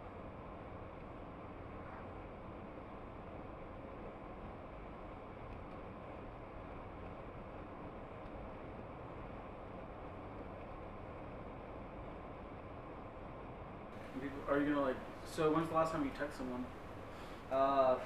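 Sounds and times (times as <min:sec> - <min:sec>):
car cabin road and engine noise: 0:14.0 - 0:18.0.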